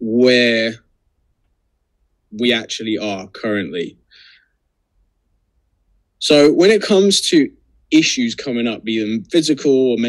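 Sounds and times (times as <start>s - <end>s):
soft intake of breath: 4.1s - 4.6s.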